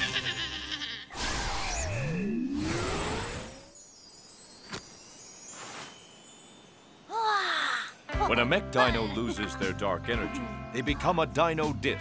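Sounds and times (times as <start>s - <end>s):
shimmering magic chime: 1.8s - 8.1s.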